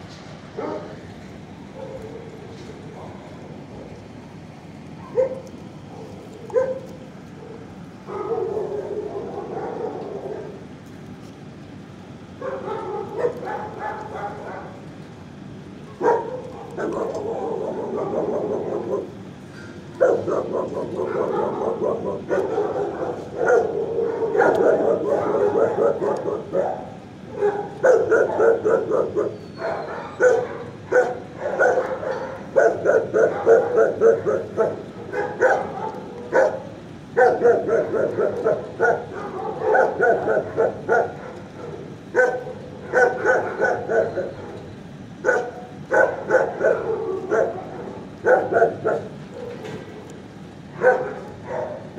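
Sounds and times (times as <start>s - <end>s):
dogs barking: 0.6s - 1.0s, 1.7s - 4.0s, 4.9s - 10.7s, 12.3s - 51.9s.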